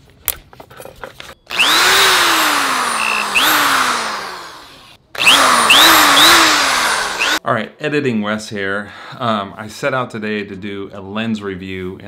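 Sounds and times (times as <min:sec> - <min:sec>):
electric drill motor whine: 0:01.5 - 0:07.4.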